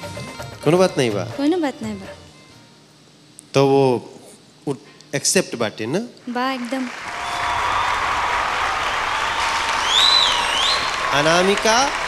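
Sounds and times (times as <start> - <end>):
studio audience applauding: 6.4 - 12.0.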